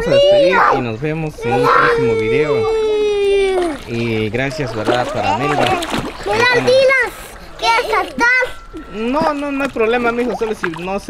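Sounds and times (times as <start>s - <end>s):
water splashing: 0.0s - 11.0s
child calling out: 1.4s - 3.8s.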